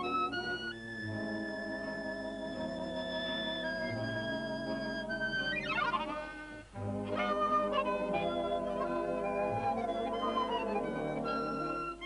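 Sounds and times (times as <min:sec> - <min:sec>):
chromatic harmonica melody: 0:00.0 - 0:12.0
instrumental accompaniment: 0:00.0 - 0:12.0.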